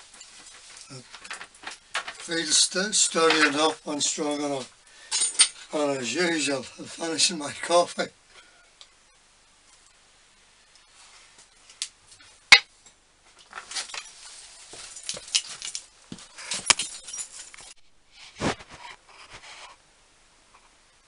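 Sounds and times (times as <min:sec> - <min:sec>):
scraping and rustling: 0:00.0 - 0:07.0, 0:13.2 - 0:19.8.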